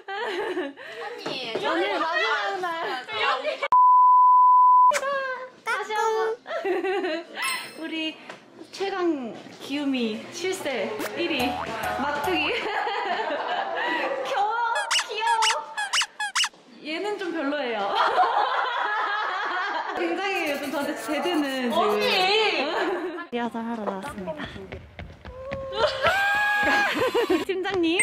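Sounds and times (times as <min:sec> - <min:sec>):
laughter: 0:00.0 - 0:01.2, 0:06.5 - 0:07.6, 0:12.5 - 0:14.4, 0:17.9 - 0:23.3, 0:25.8 - 0:27.5
censor bleep tone: 0:03.7 - 0:04.9
people talking: 0:09.1 - 0:13.3, 0:20.0 - 0:24.8, 0:27.4 - 0:28.0
short high squeaks: 0:14.8 - 0:16.5.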